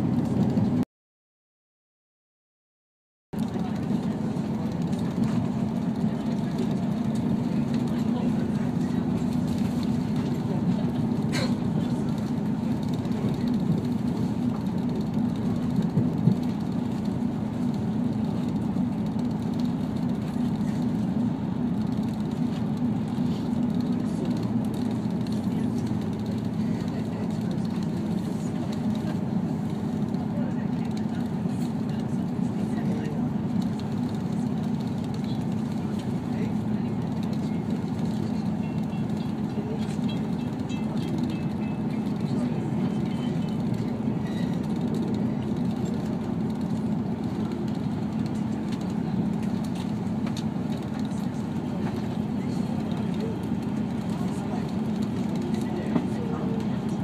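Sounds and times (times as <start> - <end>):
diesel railcar running: 0.0 - 0.8, 3.4 - 57.0.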